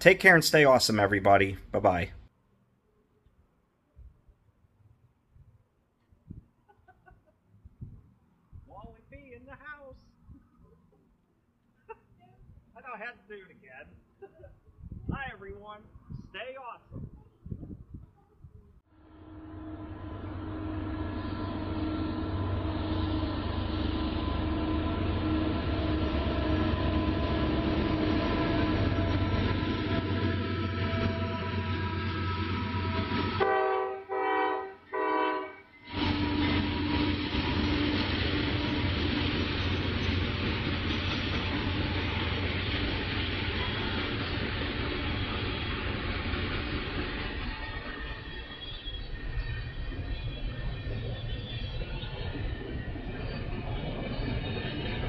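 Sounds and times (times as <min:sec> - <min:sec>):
freight train rumbling: 0:17.0 - 0:55.0
train horn: 0:18.9 - 0:37.9.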